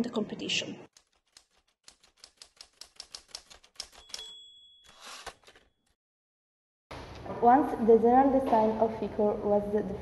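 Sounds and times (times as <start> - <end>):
typewriter key clicks: 1.3 - 4.4
typewriter bell ding: 3.8 - 5.8.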